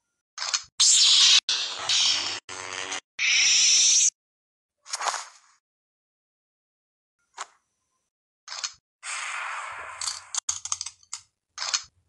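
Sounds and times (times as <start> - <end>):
lightsaber hissing sweep: 9.0 - 10.4.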